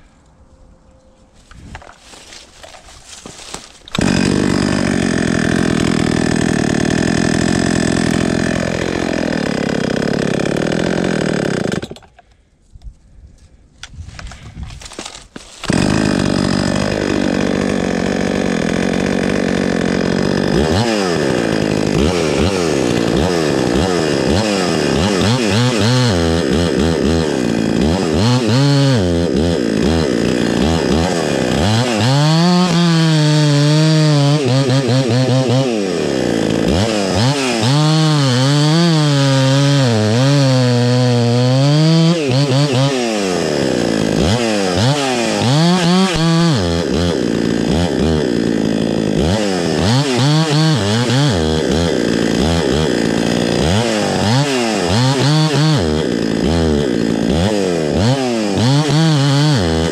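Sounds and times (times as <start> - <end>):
chainsaw cutting log: 2.0 - 12.3, 14.2 - 59.9
chainsaw revving: 3.1 - 12.2, 14.9 - 59.9.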